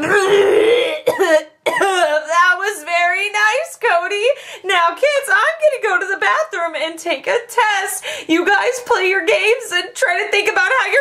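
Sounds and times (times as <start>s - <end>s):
person coughing and gagging: 0.0s - 2.2s.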